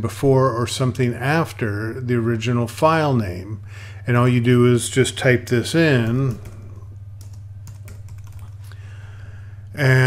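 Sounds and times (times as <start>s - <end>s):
steady low hum: 0.0s - 10.0s
typing on computer keyboard: 7.2s - 8.6s.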